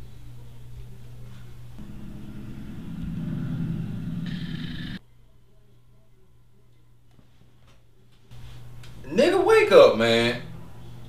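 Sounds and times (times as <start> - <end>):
low engine-like rumble: 0.0 - 5.0.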